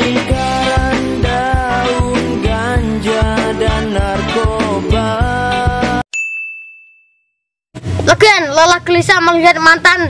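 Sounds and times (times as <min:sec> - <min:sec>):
music: 0:00.0 - 0:06.0
bright bell ding: 0:06.1 - 0:07.5.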